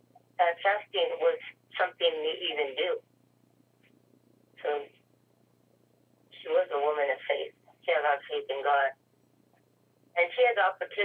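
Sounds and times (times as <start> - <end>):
steady low hum: 0.0 - 11.0
person talking over telephone: 0.4 - 3.0, 4.6 - 4.9, 6.4 - 8.9, 10.2 - 11.0.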